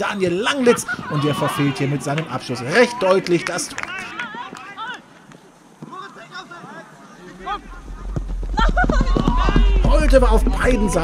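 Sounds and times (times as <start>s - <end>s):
players calling and shouting: 0.0s - 11.0s
deep low rumble: 7.4s - 11.0s.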